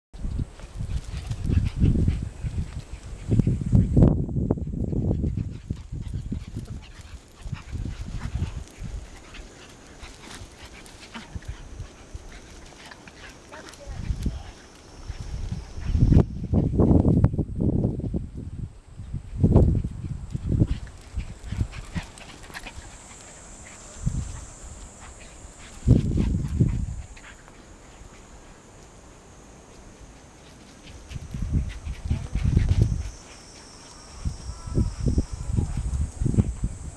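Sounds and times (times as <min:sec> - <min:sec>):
dogs snuffling: 0:04.8 - 0:16.8, 0:19.6 - 0:36.9
dogs growling: 0:20.6 - 0:28.4.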